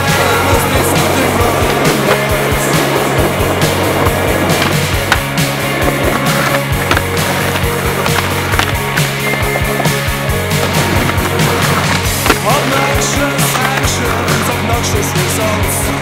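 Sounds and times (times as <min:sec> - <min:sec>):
band music: 0:00.0 - 0:16.0
skateboard wheels rolling on concrete: 0:00.0 - 0:16.0
skateboard tail pops and landings: 0:00.1 - 0:14.6.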